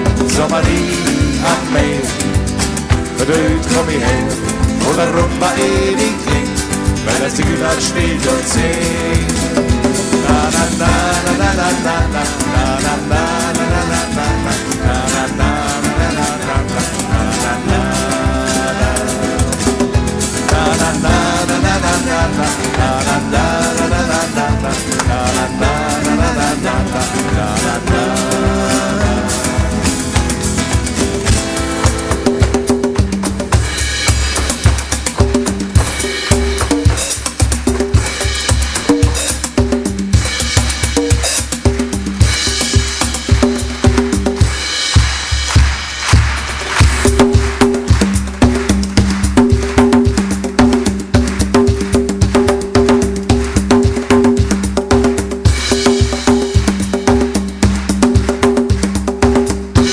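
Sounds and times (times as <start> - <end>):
strummed acoustic guitar: 0.0 - 44.8
bass: 0.0 - 59.9
live band playing rumba: 0.0 - 59.9
percussion beat: 0.0 - 59.9.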